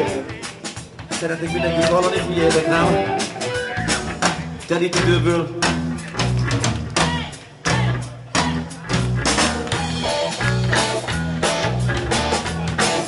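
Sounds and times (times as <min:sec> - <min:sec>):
heavy metal band playing: 0:00.0 - 0:13.0.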